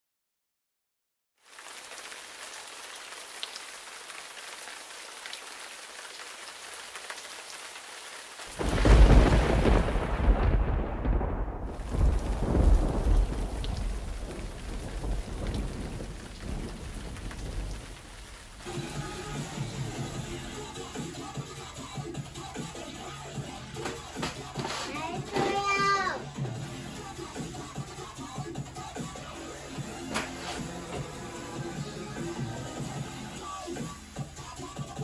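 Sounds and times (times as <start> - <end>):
rain falling: 1.4 - 35.0
thunder crack and rumble: 8.6 - 19.0.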